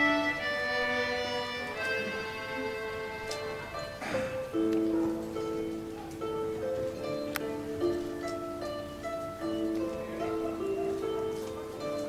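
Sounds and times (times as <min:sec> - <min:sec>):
folk group with fiddles and harps: 0:00.0 - 0:12.0.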